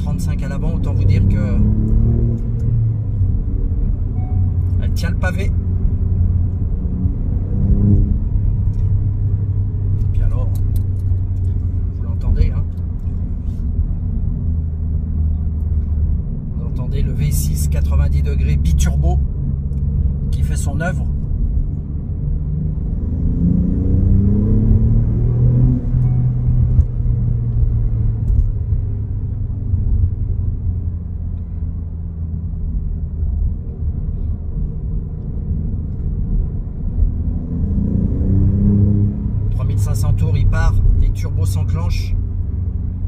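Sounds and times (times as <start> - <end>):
car engine accelerating: 0.0 - 43.0.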